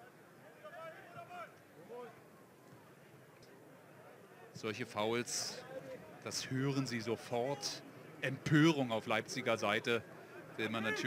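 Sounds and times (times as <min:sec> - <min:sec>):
faint shouting voices: 0:00.0 - 0:03.0, 0:10.0 - 0:11.0
low crowd noise: 0:00.0 - 0:11.0.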